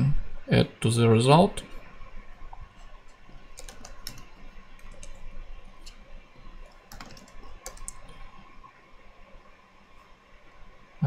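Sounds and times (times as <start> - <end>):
computer keyboard typing: 3.5 - 5.2, 6.6 - 8.2.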